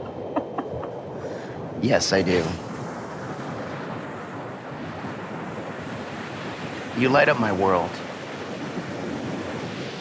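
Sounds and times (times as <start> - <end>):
ocean surf rushing: 0.0 - 10.0
wind buffeting microphone: 0.0 - 10.0.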